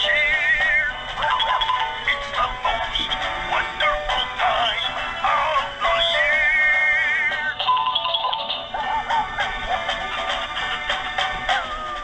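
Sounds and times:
toy speaker playing a song: 0:00.0 - 0:12.0.

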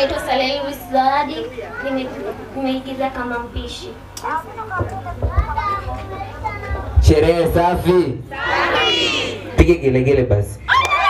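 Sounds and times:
children chattering: 0:00.0 - 0:03.1, 0:04.2 - 0:07.0
low electrical hum: 0:00.0 - 0:11.0.

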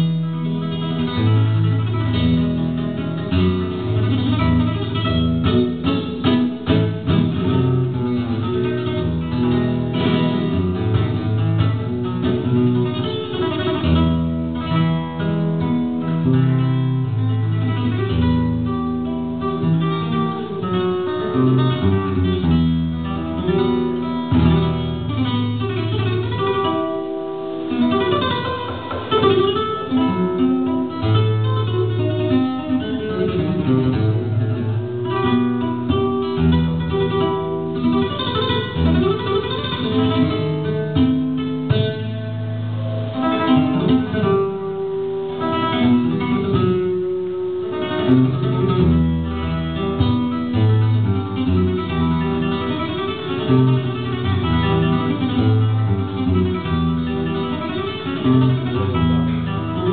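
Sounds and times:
solo flamenco guitar: 0:00.0 - 0:59.9.

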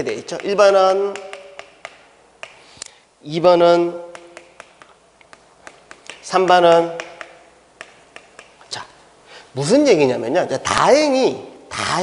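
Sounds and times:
chalk tapping on chalkboard: 0:00.1 - 0:02.7, 0:04.1 - 0:08.6.

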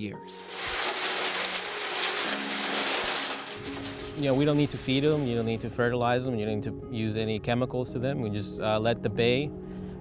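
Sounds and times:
background music with sustained notes: 0:00.0 - 0:10.0
oysters rattling in a steel drum: 0:00.4 - 0:06.6.

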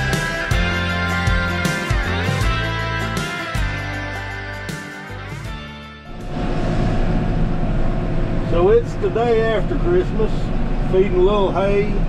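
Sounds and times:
tractor diesel engine drone: 0:06.0 - 0:12.0.

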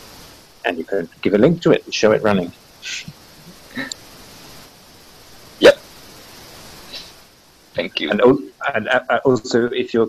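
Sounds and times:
faint steady hiss: 0:00.0 - 0:10.0
person saying yep: 0:07.8 - 0:09.9.

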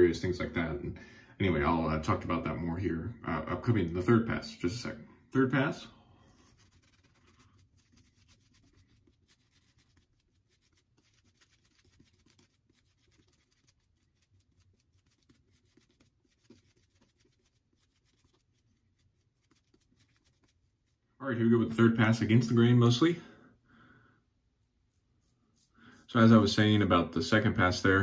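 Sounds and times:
shaving brush swishing lather: 0:06.2 - 0:21.1, 0:24.8 - 0:26.7.

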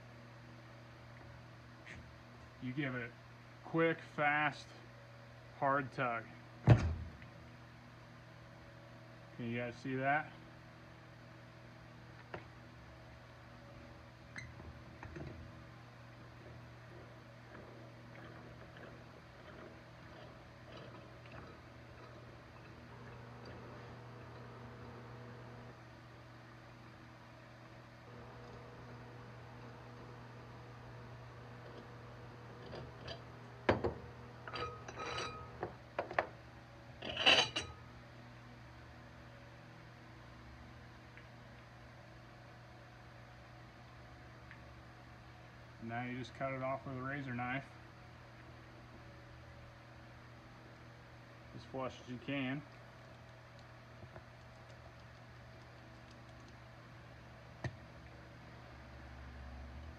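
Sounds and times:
low steady hum: 0:00.0 - 0:59.9
metal clinks and knocks: 0:32.6 - 0:36.3.

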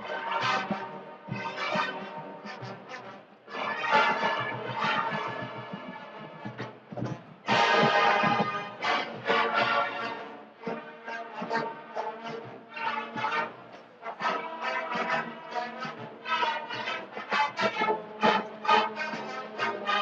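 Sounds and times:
marching band playing: 0:00.0 - 0:20.0.

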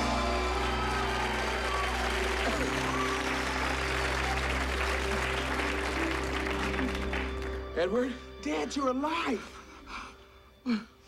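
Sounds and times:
audience applauding: 0:00.0 - 0:07.8
music with held notes: 0:00.0 - 0:11.0.

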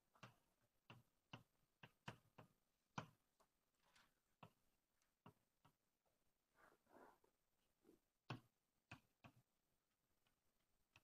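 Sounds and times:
faint irregular taps: 0:00.0 - 0:11.0.

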